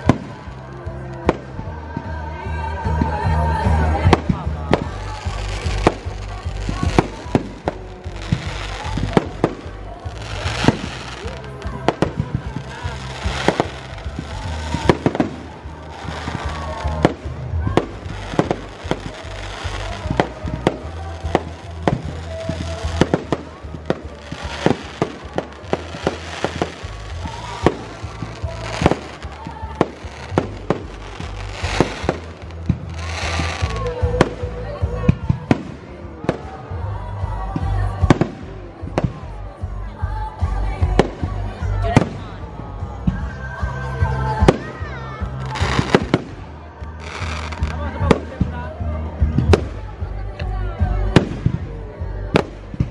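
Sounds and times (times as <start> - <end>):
fireworks bursting: 2.8 - 36.5, 44.1 - 48.6.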